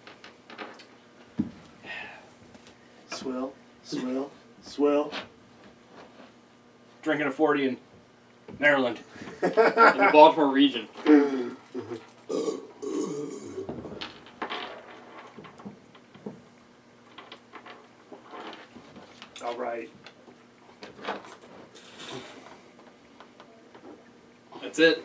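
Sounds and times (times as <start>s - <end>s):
men chugging beer: 11.0s - 14.0s
grunt-like sounds: 11.1s - 13.7s
man belching: 11.1s - 13.8s.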